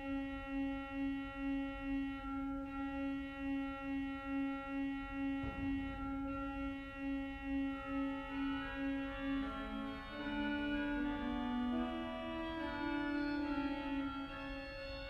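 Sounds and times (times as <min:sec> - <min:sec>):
pipe organ sustained chord: 0:00.0 - 0:15.0.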